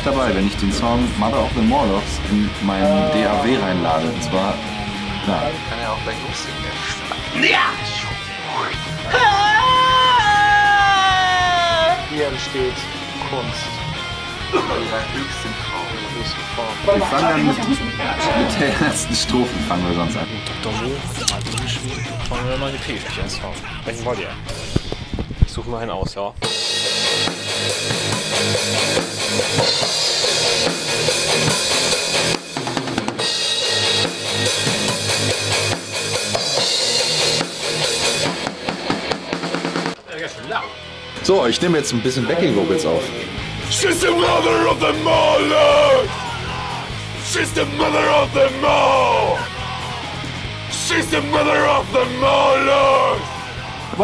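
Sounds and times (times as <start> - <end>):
drum kit rock beat: 0.0 - 25.4, 26.4 - 54.0
man's long high sung yell: 2.8 - 5.7, 9.1 - 12.1, 43.6 - 54.0.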